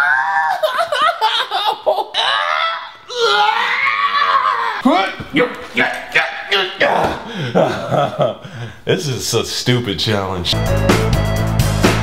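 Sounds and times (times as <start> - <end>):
man crying out in pain: 0.0 - 4.8
man wailing: 0.0 - 5.5
man laughing: 0.6 - 2.4, 7.2 - 8.7.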